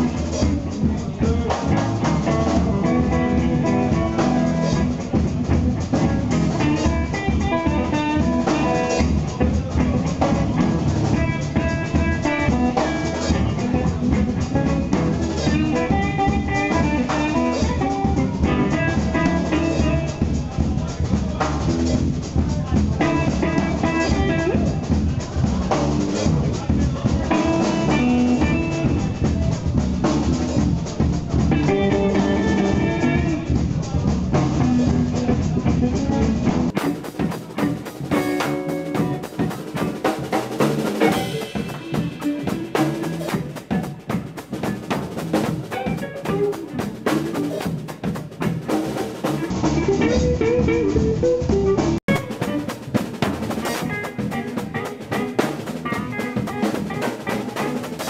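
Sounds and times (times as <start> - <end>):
drum kit: 0.0 - 58.0
electric bass: 0.0 - 58.0
electric guitar: 0.0 - 58.0.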